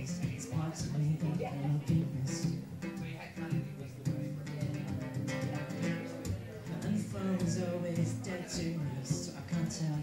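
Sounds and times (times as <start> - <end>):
acoustic guitar strumming: 0.0 - 10.0
man singing into microphone: 6.7 - 10.0.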